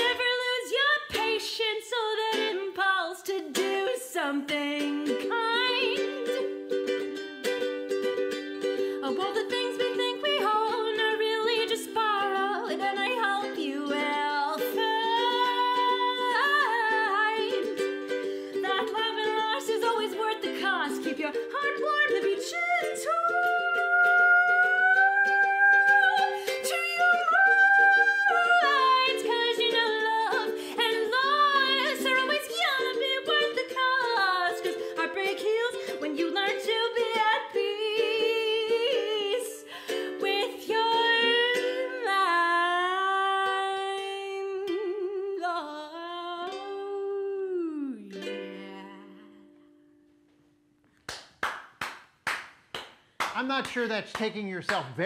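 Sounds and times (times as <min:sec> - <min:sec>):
woman singing: 0:00.0 - 0:50.0
ukulele: 0:00.0 - 0:55.0
sharp claps: 0:51.0 - 0:55.0.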